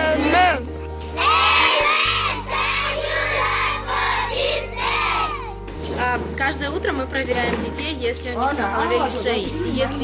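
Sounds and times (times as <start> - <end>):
backing music with bass: 0.0 - 10.0
children singing together: 1.2 - 5.5.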